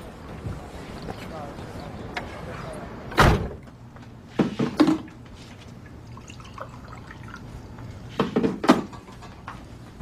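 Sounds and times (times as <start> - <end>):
car door slamming: 3.1 - 3.6.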